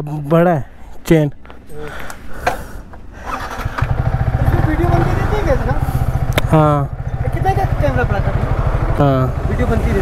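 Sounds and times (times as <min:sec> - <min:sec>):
motorcycle engine starting and idling: 0:03.2 - 0:10.0.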